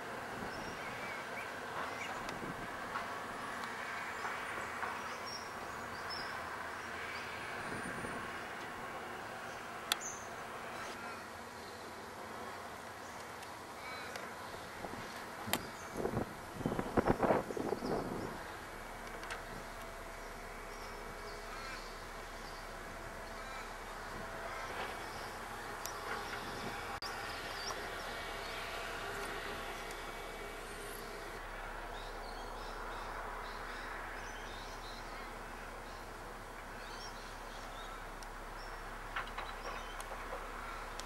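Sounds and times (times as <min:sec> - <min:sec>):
heavy machinery droning: 0:13.8 - 0:41.0.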